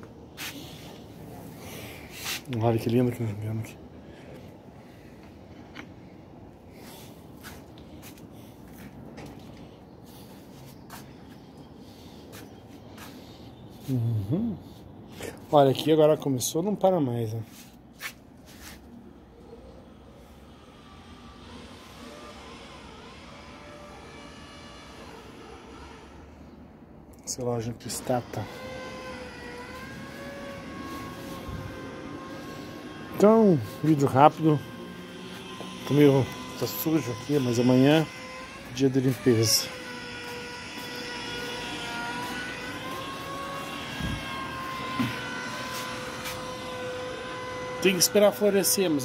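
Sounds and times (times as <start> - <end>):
distant airplane engine droning: 0.0 - 49.0.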